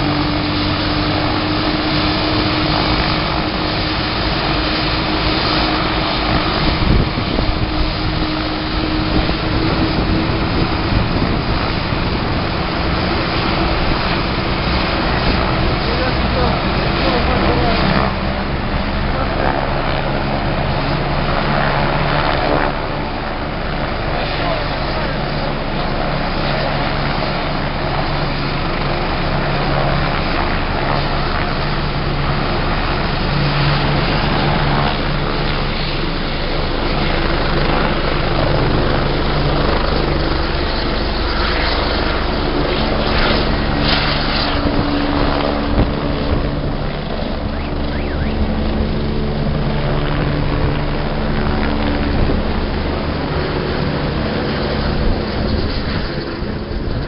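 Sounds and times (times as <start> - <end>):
loud engine drone: 0.0 - 57.0
low hum: 0.0 - 57.0
people's voices: 15.4 - 20.3, 24.0 - 27.2.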